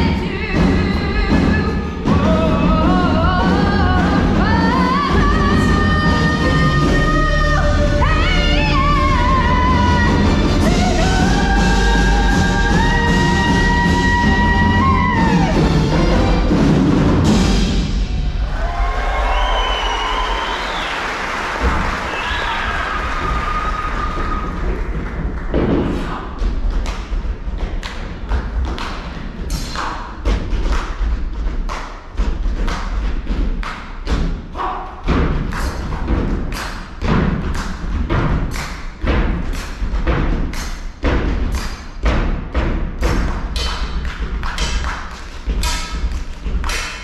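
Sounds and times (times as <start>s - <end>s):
percussion thuds and knocks: 0.0s - 18.5s, 21.5s - 47.0s
audience cheering and whooping: 18.2s - 25.0s.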